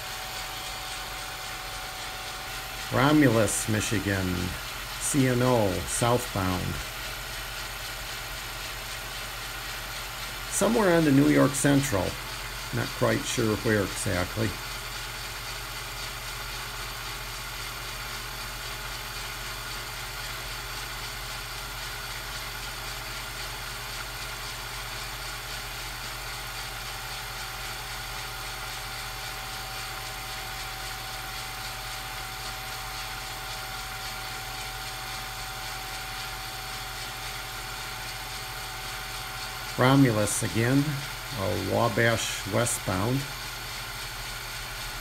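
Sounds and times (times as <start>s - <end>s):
steady hum and hiss: 0.0s - 45.0s.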